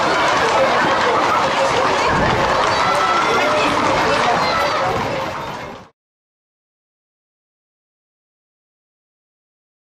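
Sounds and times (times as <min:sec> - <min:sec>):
footsteps of runners: 0:00.0 - 0:05.9
crowd voices calling and talking: 0:00.0 - 0:06.0.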